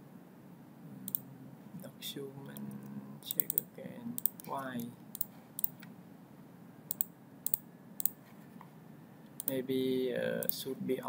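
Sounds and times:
faint steady background noise: 0:00.0 - 0:11.0
computer mouse double-clicks: 0:03.3 - 0:03.6, 0:05.1 - 0:05.8, 0:06.9 - 0:08.2, 0:09.4 - 0:09.6.

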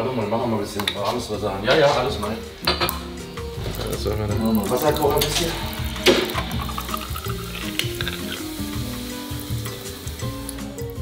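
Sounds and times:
water pouring into a glass jar: 0:03.6 - 0:11.0.

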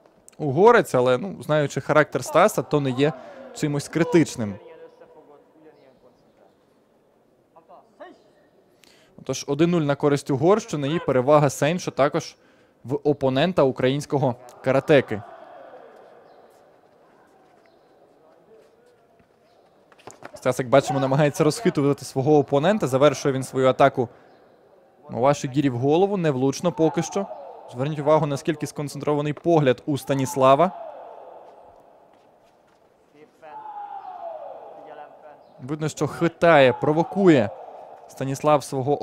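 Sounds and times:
distant indistinct voices: 0:26.4 - 0:29.1, 0:33.2 - 0:39.0.

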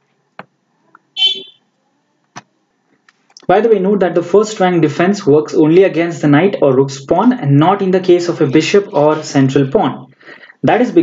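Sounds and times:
high-pitched buzzy beep: 0:01.2 - 0:01.6.

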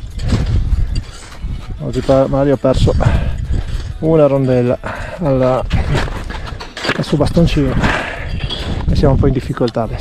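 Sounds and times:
wind buffeting microphone: 0:00.0 - 0:04.3, 0:05.4 - 0:06.6, 0:07.2 - 0:10.0
man speaking: 0:01.8 - 0:03.2, 0:04.0 - 0:06.0, 0:06.9 - 0:08.2, 0:08.9 - 0:10.0.

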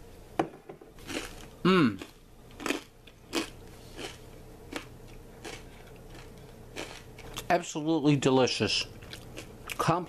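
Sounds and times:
person chewing crunchy bread: 0:01.0 - 0:07.5, 0:09.0 - 0:09.9.

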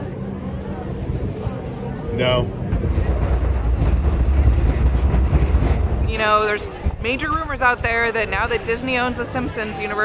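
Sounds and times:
wind buffeting microphone: 0:02.4 - 0:09.6.

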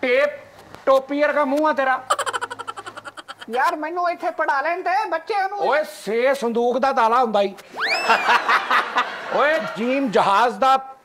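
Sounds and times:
men laughing: 0:02.1 - 0:03.7, 0:07.9 - 0:10.1
man speaking: 0:03.4 - 0:07.6
high rising whoop: 0:07.8 - 0:08.3.

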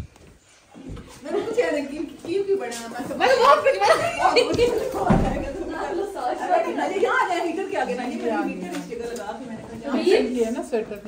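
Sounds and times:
laughter: 0:03.4 - 0:05.1.

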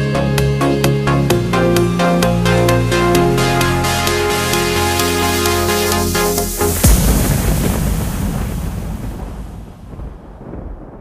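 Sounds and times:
noise wash over deep rumble: 0:05.9 - 0:11.0.

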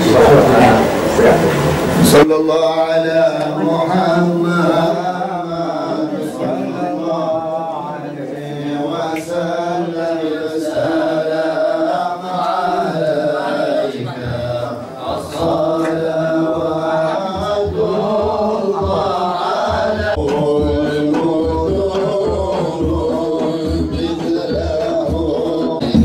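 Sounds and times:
devotional chanting: 0:00.0 - 0:26.0.

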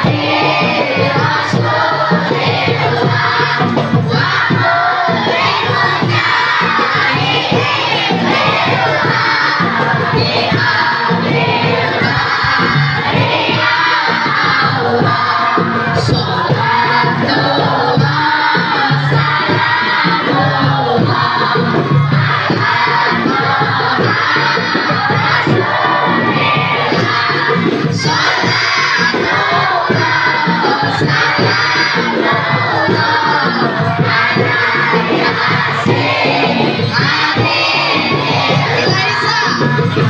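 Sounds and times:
children singing together: 0:00.0 - 0:40.0
hand drums beating: 0:00.0 - 0:40.0
woman singing into a microphone: 0:13.4 - 0:40.0.

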